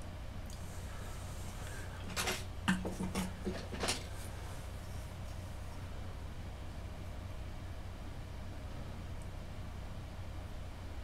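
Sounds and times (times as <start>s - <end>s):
steady low hum: 0.0s - 11.0s
knocks and rustles of handling: 1.6s - 5.2s.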